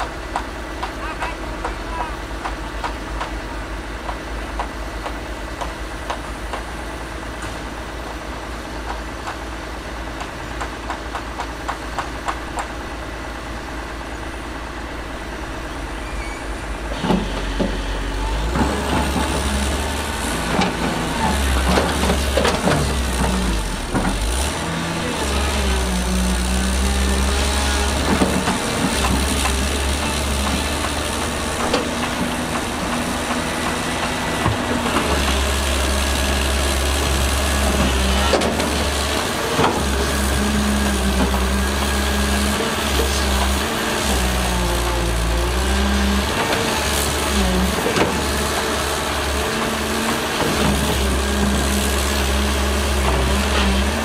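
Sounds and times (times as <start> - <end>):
diesel engines under load: 0.0 - 54.0.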